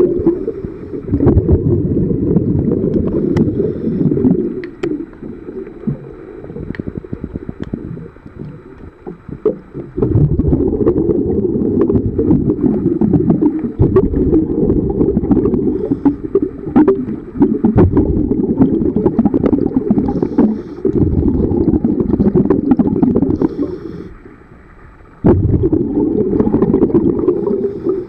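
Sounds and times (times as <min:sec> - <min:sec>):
diver's exhaled bubbles rumbling: 0:00.0 - 0:24.0, 0:25.2 - 0:28.0.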